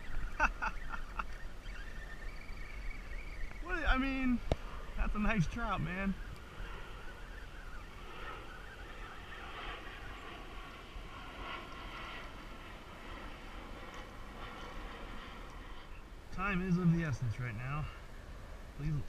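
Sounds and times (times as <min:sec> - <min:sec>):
faint hiss and whir: 0:00.0 - 0:19.0
wind rumbling on microphone: 0:00.0 - 0:19.0.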